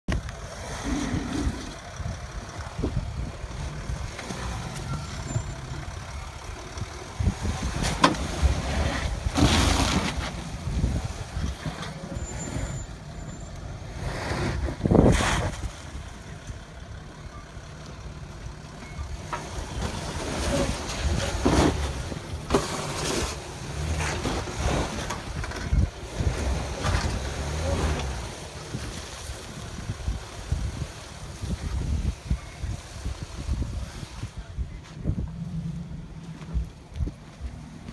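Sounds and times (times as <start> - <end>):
pickup engine running at low revs: 0.1 - 37.9.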